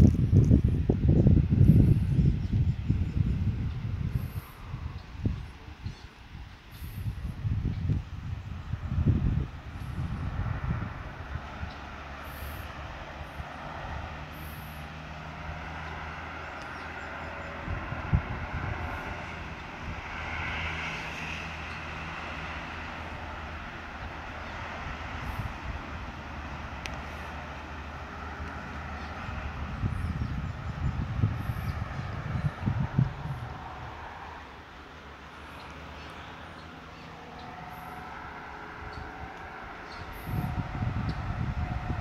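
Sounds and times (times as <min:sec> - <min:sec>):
low mechanical hum: 0:00.0 - 0:42.0
wind buffeting microphone: 0:00.0 - 0:42.0.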